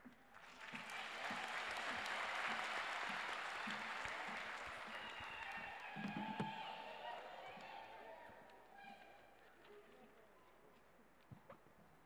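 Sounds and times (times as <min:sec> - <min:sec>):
audience applauding: 0:00.3 - 0:07.8.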